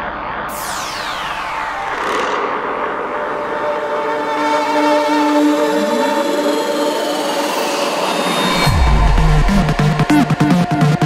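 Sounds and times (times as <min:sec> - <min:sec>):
falling synth sweep: 0:00.5 - 0:10.8
steady synth tones: 0:00.5 - 0:10.8.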